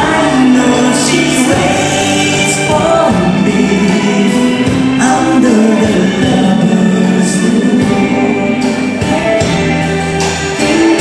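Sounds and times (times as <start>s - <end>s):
electric bass: 0.0s - 11.0s
live band playing slow song: 0.0s - 11.0s.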